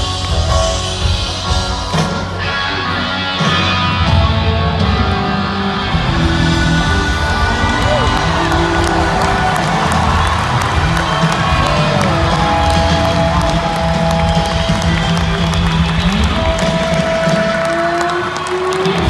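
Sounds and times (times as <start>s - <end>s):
crowd cheering: 0.0s - 19.0s
electric guitar bending notes: 0.0s - 19.0s
live rock band: 0.0s - 19.0s.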